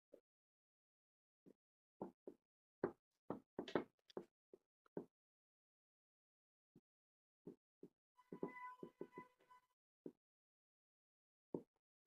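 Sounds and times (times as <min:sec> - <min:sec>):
marker pen writing on whiteboard: 0:08.2 - 0:09.6.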